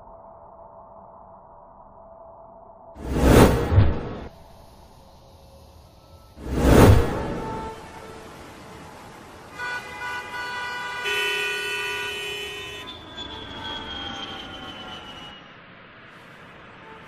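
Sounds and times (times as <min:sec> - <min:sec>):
vehicle horns sounding: 0:09.5 - 0:13.9.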